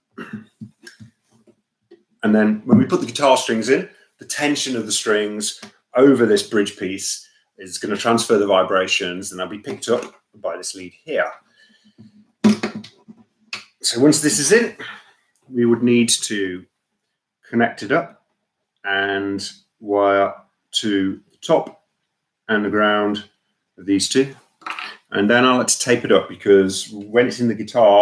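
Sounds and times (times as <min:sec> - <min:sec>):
man talking: 0:02.2 - 0:11.4, 0:13.6 - 0:16.6, 0:17.5 - 0:18.2, 0:18.8 - 0:21.8, 0:22.5 - 0:24.4, 0:25.0 - 0:28.0
guitar handling knocks and rubs: 0:12.0 - 0:13.3.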